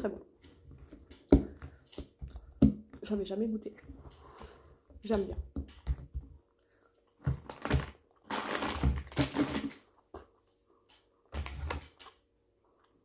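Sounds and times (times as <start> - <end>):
crinkly plastic packaging rustling: 7.2 - 9.9.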